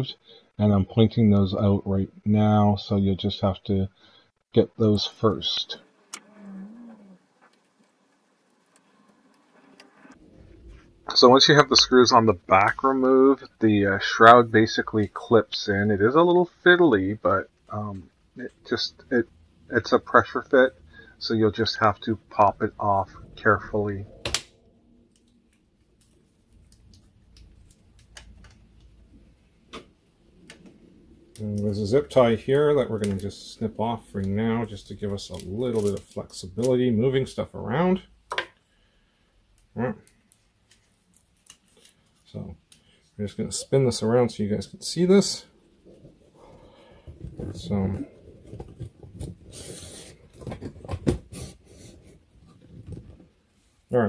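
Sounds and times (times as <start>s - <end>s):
rubbing and scraping: 7.2s - 11.2s, 45.8s - 53.4s.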